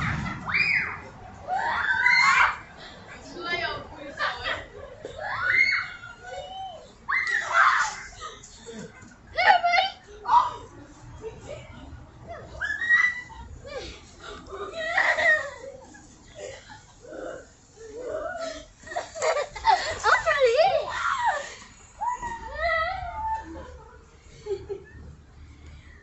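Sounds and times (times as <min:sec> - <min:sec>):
people laughing: 0:03.6 - 0:06.6, 0:07.8 - 0:09.8, 0:11.2 - 0:17.3, 0:17.9 - 0:21.8, 0:22.4 - 0:25.3.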